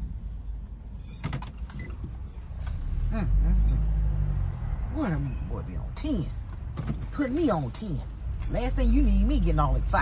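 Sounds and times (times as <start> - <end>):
light clicks and jingling: 0.0 - 4.6, 5.9 - 10.0.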